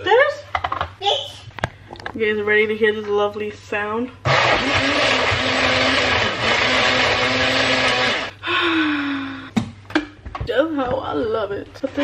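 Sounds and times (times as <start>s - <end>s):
blender motor running: 4.2s - 8.4s.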